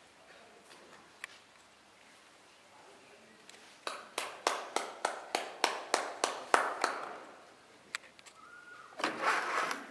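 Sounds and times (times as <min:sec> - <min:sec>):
hand clapping: 0:03.8 - 0:07.2.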